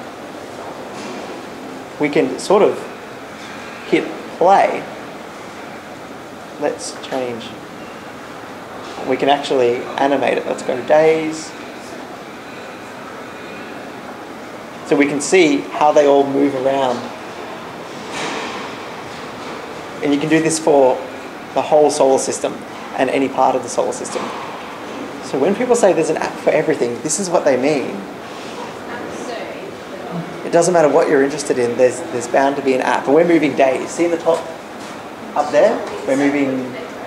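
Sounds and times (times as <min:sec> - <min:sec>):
room hiss: 0:00.0 - 0:37.0.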